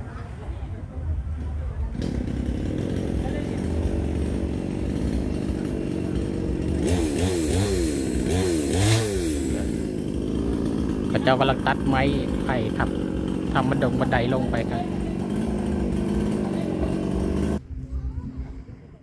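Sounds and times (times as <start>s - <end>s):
chainsaw idling and revving: 1.4s - 17.6s.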